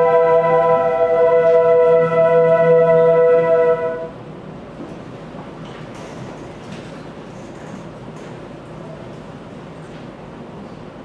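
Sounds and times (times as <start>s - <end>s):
flutes holding a chord: 0.0s - 4.2s.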